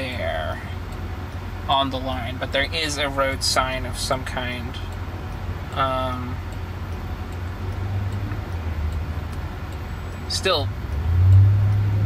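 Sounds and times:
low hum inside car cabin: 0.0s - 12.0s
traffic: 0.0s - 12.0s.

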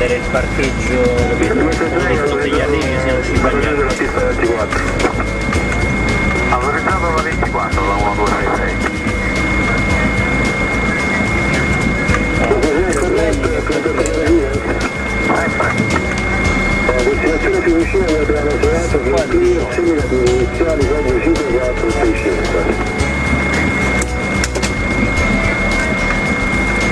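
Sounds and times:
cockpit low rumble: 0.0s - 26.9s
high-pitched whine: 0.0s - 26.9s.

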